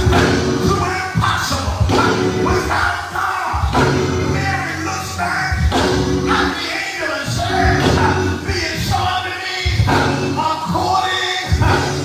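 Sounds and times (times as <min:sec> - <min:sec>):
band with strong bass line: 0:00.0 - 0:12.0
choir singing: 0:00.0 - 0:12.0.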